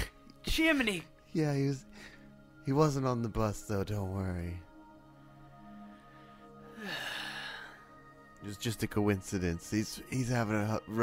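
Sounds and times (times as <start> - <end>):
soft background music: 0.0 - 11.0
man sighing: 6.6 - 8.0.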